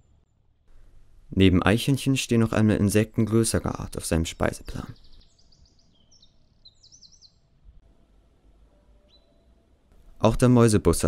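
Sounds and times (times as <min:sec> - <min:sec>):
faint bird song: 0:00.0 - 0:11.0.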